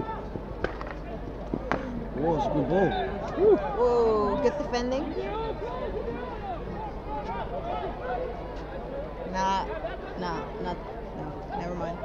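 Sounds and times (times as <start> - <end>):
faint distant voices: 0.0 - 12.0
hockey sticks striking ball: 0.6 - 1.0.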